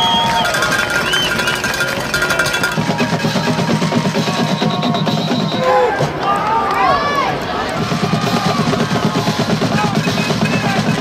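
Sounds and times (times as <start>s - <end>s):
crowd noise: 0.0s - 11.0s
spectators shouting: 0.0s - 11.0s.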